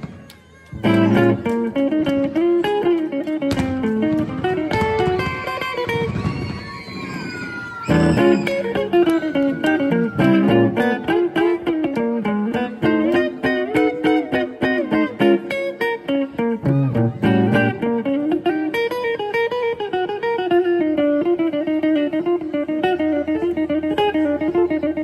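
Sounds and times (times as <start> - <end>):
electric guitar picked notes: 0.8 - 6.1, 7.8 - 25.0.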